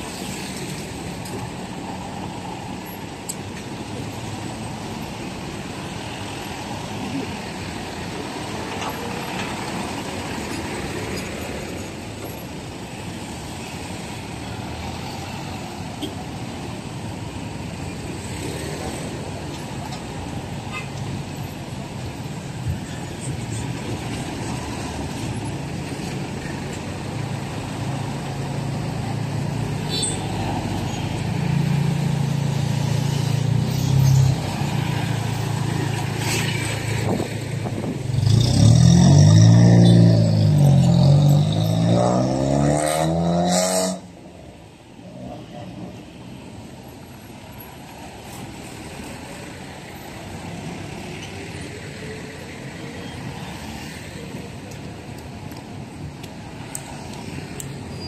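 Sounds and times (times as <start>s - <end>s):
cars and motorcycles passing: 0.0s - 58.0s.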